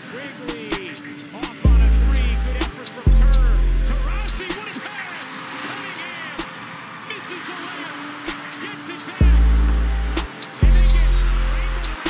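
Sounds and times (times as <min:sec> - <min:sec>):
ticking hi-hat: 0:00.0 - 0:05.3, 0:06.1 - 0:12.0
background music: 0:00.0 - 0:12.0.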